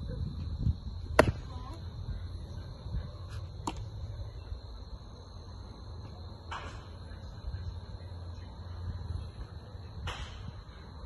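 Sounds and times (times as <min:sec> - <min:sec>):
steady high hum: 0:00.0 - 0:11.0.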